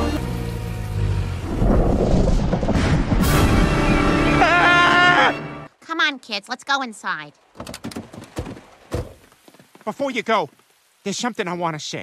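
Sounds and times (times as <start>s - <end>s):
rain hissing: 8.8s - 12.0s.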